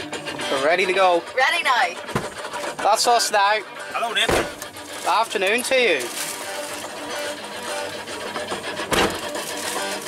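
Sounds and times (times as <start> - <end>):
guitar music from radio: 0.0 - 10.0
sharp thump: 2.1 - 2.4.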